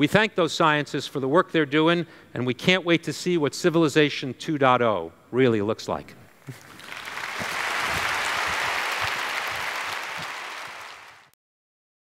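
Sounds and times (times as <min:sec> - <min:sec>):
audience applause: 0:06.5 - 0:11.4.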